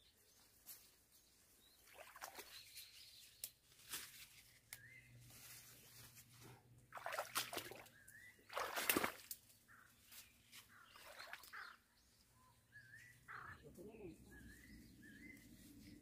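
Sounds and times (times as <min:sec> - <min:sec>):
leaves and branches rustling: 0:00.2 - 0:06.6, 0:08.5 - 0:11.7, 0:13.0 - 0:16.0
bird chirping: 0:07.6 - 0:16.0.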